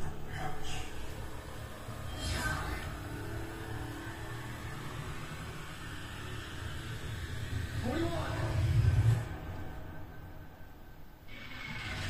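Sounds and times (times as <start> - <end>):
voice-like sound: 2.0 - 3.4, 7.8 - 8.9.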